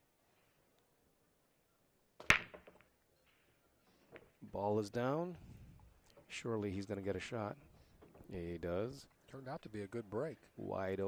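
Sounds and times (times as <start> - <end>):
billiard balls clicking: 2.2 - 3.0
sharp crack of balls breaking: 2.2 - 3.0.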